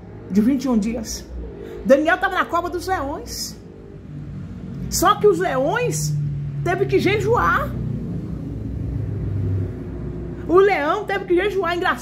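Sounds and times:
low rumble with deep hum: 0:00.0 - 0:12.0.

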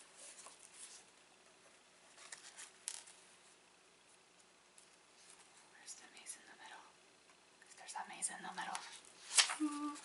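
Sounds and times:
paper pages rustling: 0:02.1 - 0:03.2, 0:08.6 - 0:10.0
person humming: 0:09.6 - 0:10.0.

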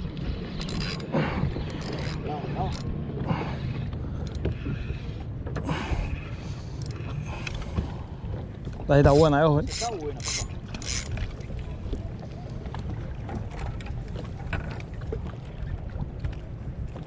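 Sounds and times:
wind rumble on microphone: 0:00.0 - 0:17.0
fishing reel cranking clicks: 0:09.6 - 0:11.1.

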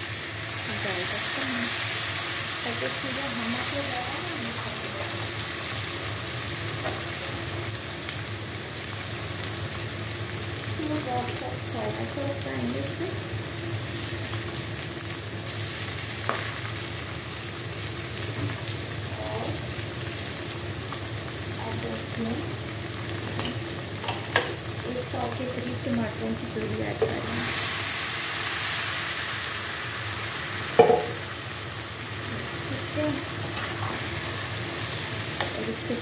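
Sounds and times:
meat sizzling in oil: 0:00.0 - 0:36.0.

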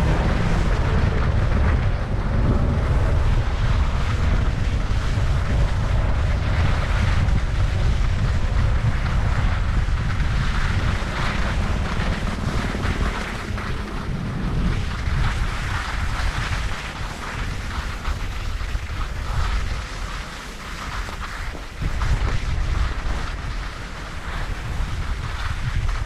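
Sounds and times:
skis scraping over snow: 0:00.0 - 0:26.0
wind buffeting microphone: 0:00.0 - 0:26.0.

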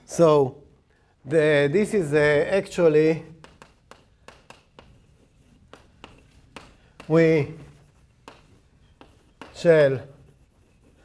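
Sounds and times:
chalk tapping on blackboard: 0:02.8 - 0:11.0.

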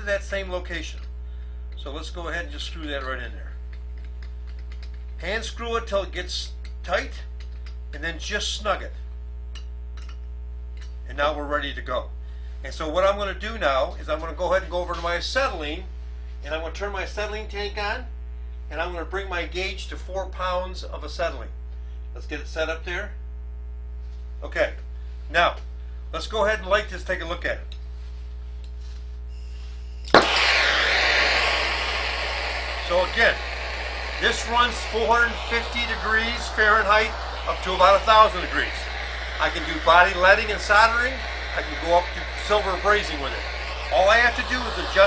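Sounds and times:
steady low hum: 0:00.0 - 0:45.0
torch igniting with a pop: 0:30.0 - 0:45.0
torch flame hissing: 0:30.1 - 0:45.0.

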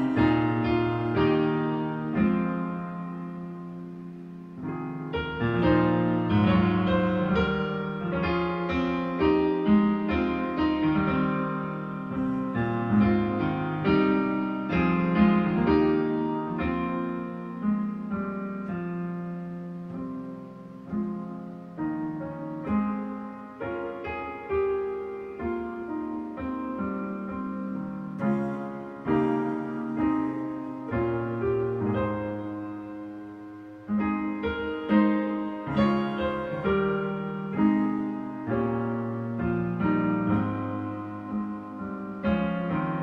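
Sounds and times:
hymn on digital piano: 0:00.0 - 0:43.0.

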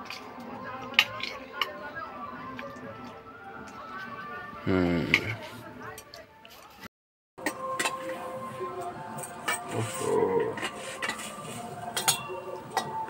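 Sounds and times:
background music: 0:00.0 - 0:06.8, 0:07.4 - 0:13.0
metal plates and bowls clinking: 0:07.4 - 0:13.0
voices: 0:08.2 - 0:13.0.

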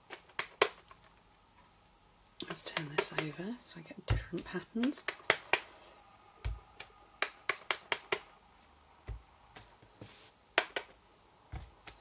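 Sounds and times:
brushing hiss: 0:10.0 - 0:10.4.

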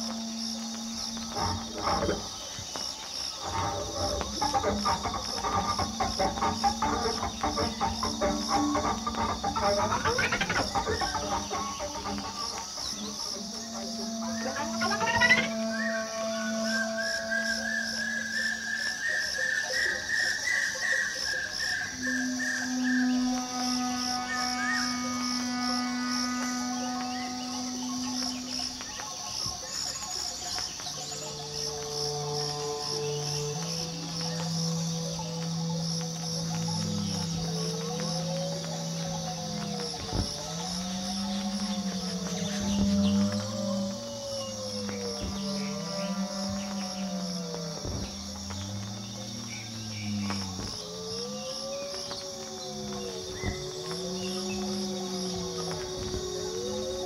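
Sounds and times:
swooping bending tones: 0:00.0 - 0:29.0.

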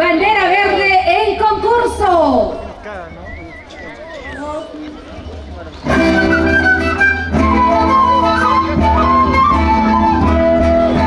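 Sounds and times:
band of flutes playing: 0:02.3 - 0:11.0.

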